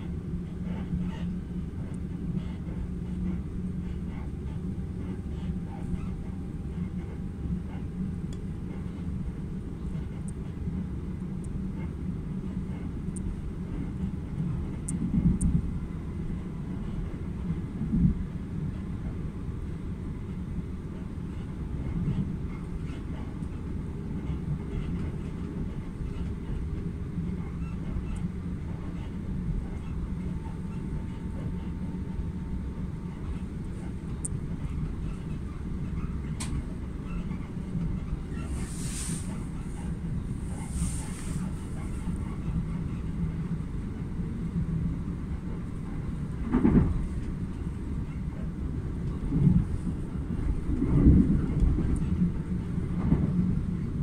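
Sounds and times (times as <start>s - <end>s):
train rumbling at speed: 0.0s - 54.0s
train bumps: 13.7s - 15.7s, 45.4s - 48.4s, 49.1s - 53.6s.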